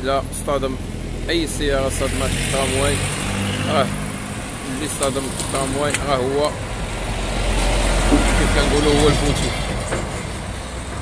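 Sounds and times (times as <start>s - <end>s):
minibus engine passing: 0.0s - 11.0s.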